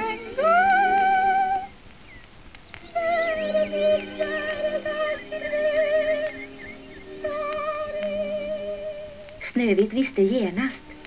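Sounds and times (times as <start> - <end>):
woman singing with vibrato: 0.0 - 1.7, 2.9 - 9.3.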